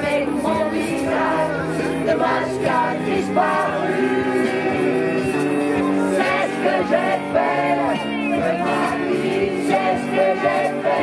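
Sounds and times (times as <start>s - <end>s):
group singing together: 0.0s - 11.0s
strummed acoustic guitar: 0.0s - 11.0s.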